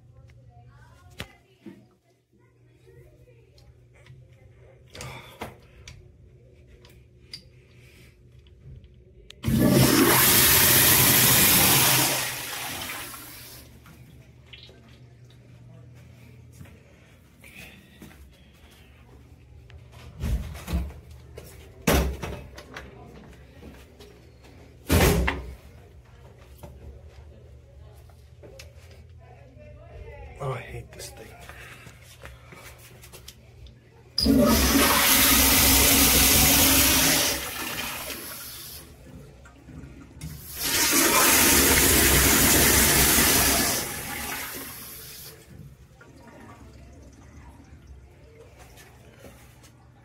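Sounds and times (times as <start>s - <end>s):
toilet flushing: 9.4s - 13.9s, 34.2s - 50.0s.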